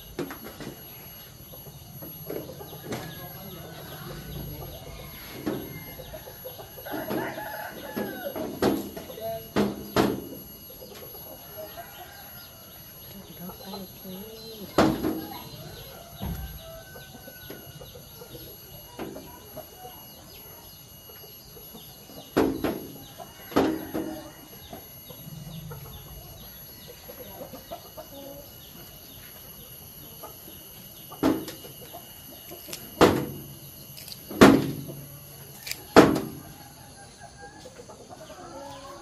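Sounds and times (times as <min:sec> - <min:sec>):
chickens clucking: 0:00.0 - 0:39.0.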